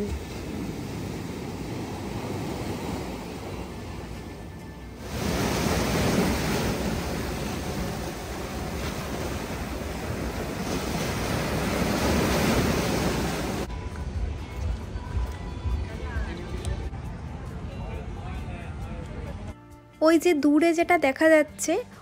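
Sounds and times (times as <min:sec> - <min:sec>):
sea surf breaking: 0:00.0 - 0:13.7.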